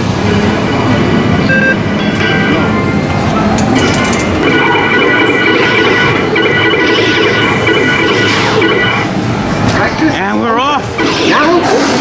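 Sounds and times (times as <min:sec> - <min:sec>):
electronic game music and beeps: 0:01.4 - 0:09.2
layered electronic tone pattern: 0:01.5 - 0:09.5.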